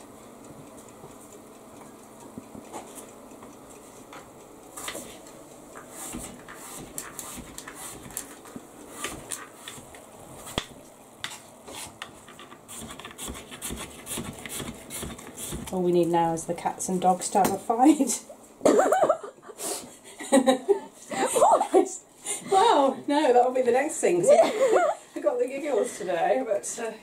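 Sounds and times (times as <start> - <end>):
knife cutting an apple: 12.7 - 15.7.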